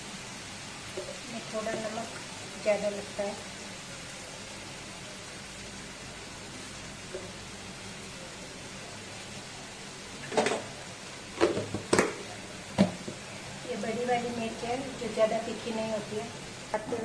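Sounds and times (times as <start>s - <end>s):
food sizzling in a pan: 0.0s - 17.0s.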